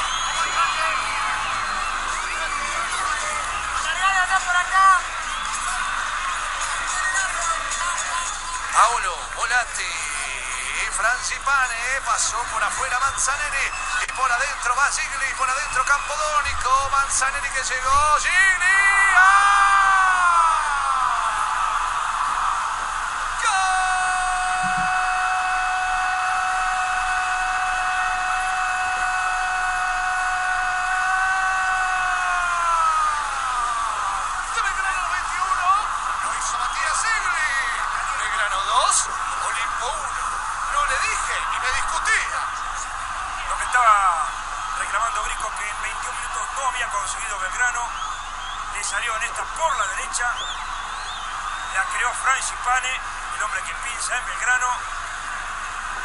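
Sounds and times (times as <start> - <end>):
stadium crowd cheering: 0.0 - 56.0
commentator shouting excitedly: 18.0 - 21.3, 23.4 - 33.9.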